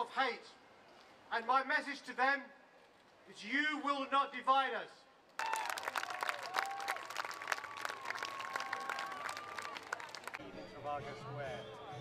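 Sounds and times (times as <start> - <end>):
crowd clapping: 5.4 - 10.4.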